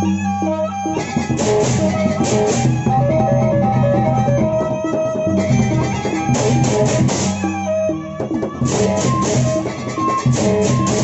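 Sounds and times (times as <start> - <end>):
large barrel drums beaten: 1.0 - 11.0
cymbals clashing: 5.6 - 7.8, 8.7 - 11.0.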